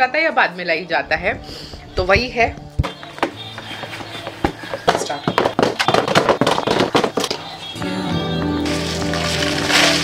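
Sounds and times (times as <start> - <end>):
plastic-wrapped rolls clattering into box: 8.6 - 10.0.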